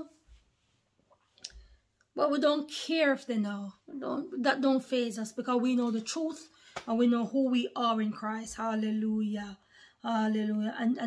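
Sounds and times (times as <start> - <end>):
woman speaking: 0.0 - 0.2, 2.2 - 11.0.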